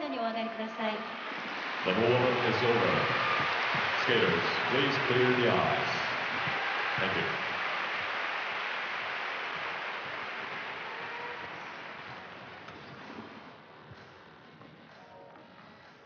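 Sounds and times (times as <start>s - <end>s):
crowd noise in indoor arena: 0.0s - 16.0s.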